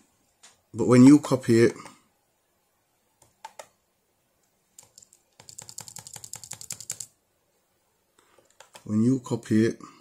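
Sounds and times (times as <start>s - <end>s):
typing on computer keyboard: 3.2s - 3.7s, 4.8s - 7.2s, 8.4s - 8.9s.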